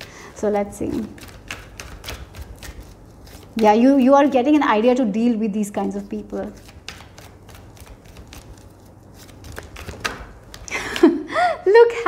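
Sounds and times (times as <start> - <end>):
cards being shuffled: 0.0 - 4.8, 5.8 - 11.2.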